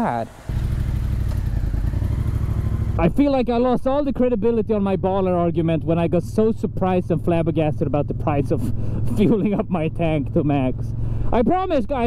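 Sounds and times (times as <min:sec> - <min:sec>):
motorcycle engine idling: 0:00.0 - 0:03.7.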